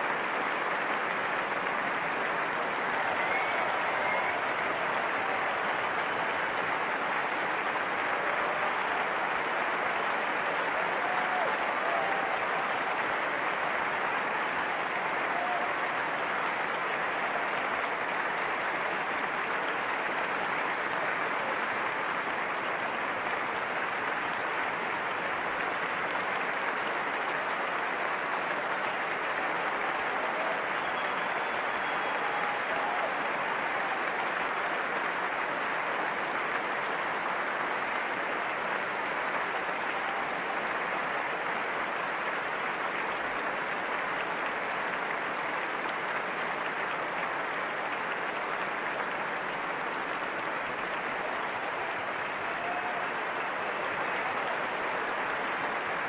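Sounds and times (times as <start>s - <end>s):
large audience applauding: 0.0s - 56.0s.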